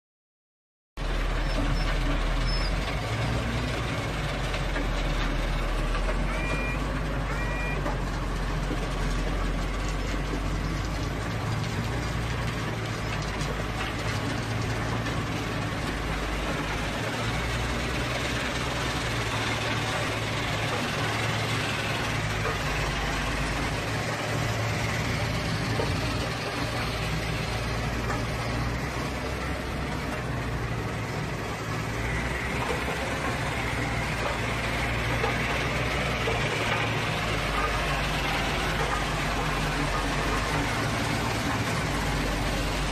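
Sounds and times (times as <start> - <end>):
heavy machinery engine drone: 1.0 - 42.9
short high beeps: 6.3 - 7.8.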